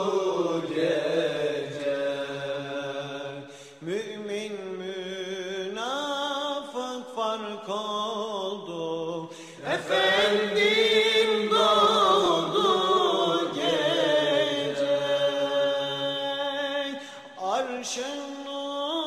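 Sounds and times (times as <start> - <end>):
man chanting religious melody: 13.6 - 19.0.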